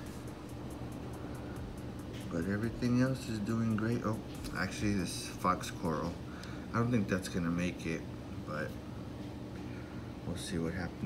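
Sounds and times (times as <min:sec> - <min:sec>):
aquarium pumps humming: 0:00.0 - 0:11.0.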